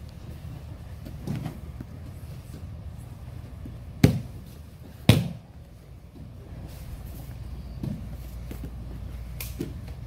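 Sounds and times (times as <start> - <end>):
low room rumble: 0.0 - 10.0
thump and rustle on padded mat: 1.1 - 1.6.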